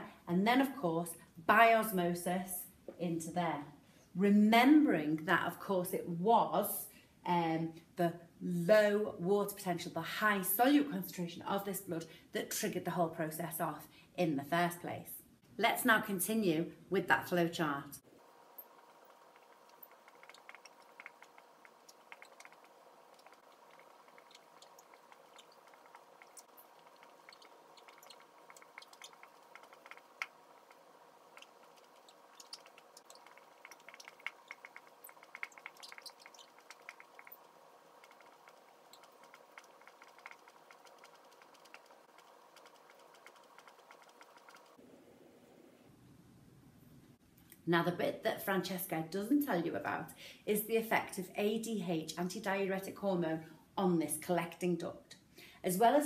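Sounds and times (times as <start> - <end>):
low steady hum: 15.1 - 51.4.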